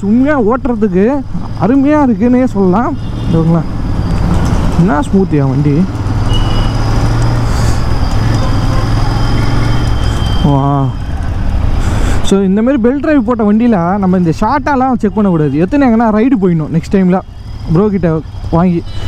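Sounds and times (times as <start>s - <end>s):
motorcycle engine running: 0.0s - 11.6s
wind and road noise: 0.0s - 19.0s.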